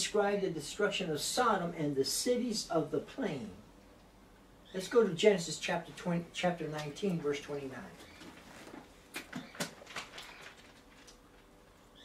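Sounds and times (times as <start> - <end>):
book pages rustling: 8.0 - 11.6.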